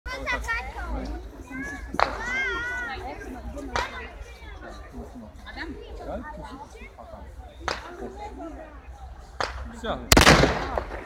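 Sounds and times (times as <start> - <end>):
crowd chatter: 0.0 - 11.0
children's high voices: 0.1 - 4.6.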